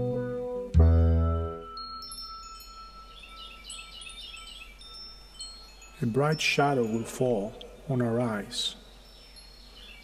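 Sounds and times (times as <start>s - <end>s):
chime-like tinkling tones: 1.5s - 10.0s.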